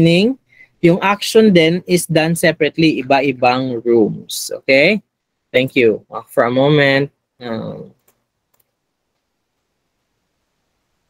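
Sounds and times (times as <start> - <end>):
faint steady background hiss: 0.0 - 11.0.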